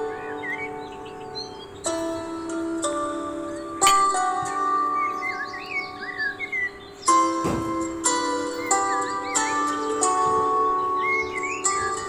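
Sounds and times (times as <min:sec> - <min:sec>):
bird-like chirps: 0:00.0 - 0:12.0
music with chime notes: 0:00.0 - 0:12.0.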